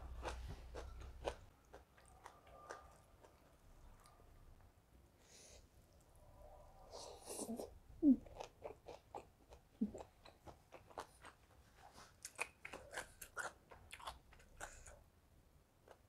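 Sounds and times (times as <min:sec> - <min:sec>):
crunchy vegetable chewing: 0:00.0 - 0:04.2, 0:08.2 - 0:15.0.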